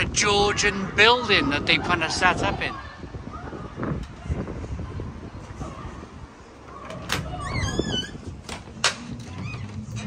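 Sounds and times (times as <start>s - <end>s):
door hinges creaking: 6.6s - 10.0s.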